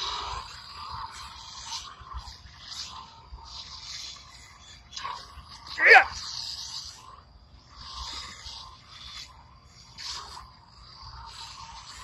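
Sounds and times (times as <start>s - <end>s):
lightsaber hissing whoosh: 0.0s - 6.8s
sharp vocal yelp: 5.8s - 6.2s.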